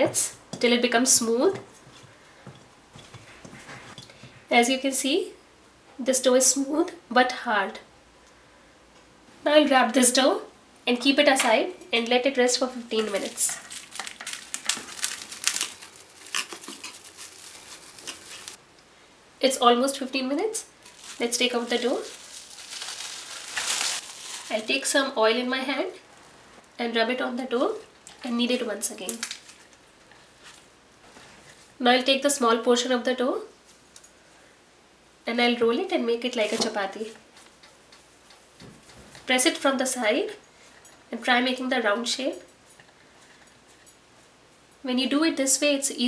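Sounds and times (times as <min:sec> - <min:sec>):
plastic wrap crinkling: 0:12.8 - 0:18.6, 0:20.8 - 0:25.0, 0:29.0 - 0:31.8.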